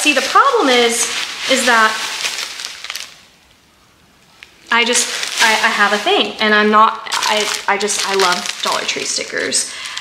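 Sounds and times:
plastic packaging crinkling: 0:00.0 - 0:03.6, 0:04.2 - 0:10.0.

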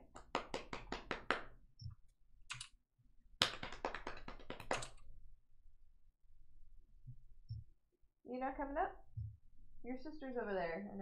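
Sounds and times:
keyboard typing: 0:02.5 - 0:02.8.

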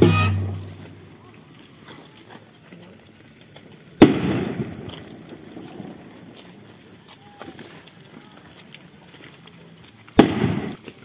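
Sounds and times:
firework bang with echo: 0:04.0 - 0:04.8, 0:10.2 - 0:10.8.

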